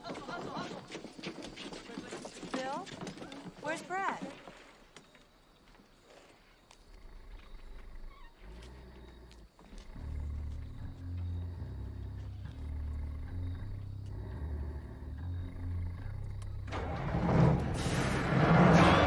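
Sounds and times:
truck engine rumbling: 10.0 - 19.0.

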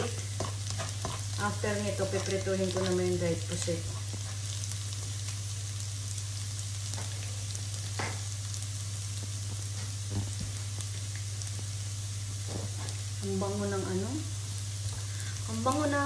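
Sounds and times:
garlic sizzling in oil: 0.0 - 16.0.

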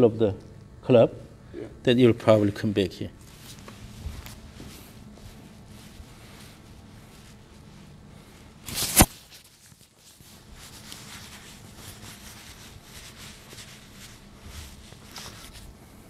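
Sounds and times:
faint rustles: 3.2 - 16.0
sharp crack: 8.7 - 9.2.

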